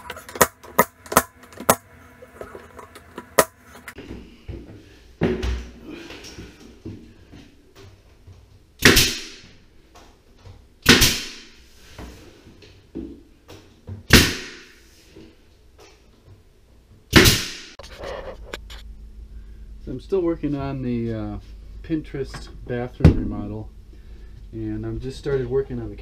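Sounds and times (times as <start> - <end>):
nail gun firing: 8.8 - 9.4, 10.8 - 11.5, 14.1 - 14.7, 17.1 - 17.7.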